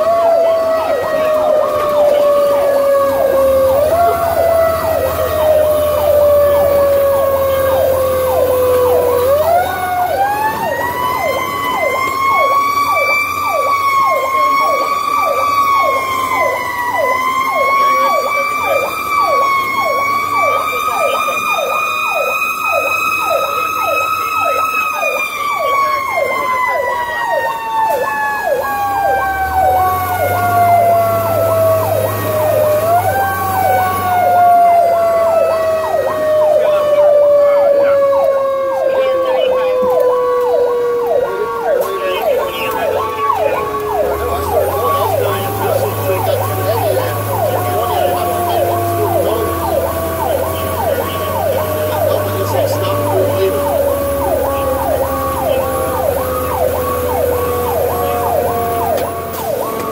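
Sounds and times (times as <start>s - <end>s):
electronic siren yelping: 0.0s - 59.9s
mechanical siren wailing: 0.0s - 59.9s.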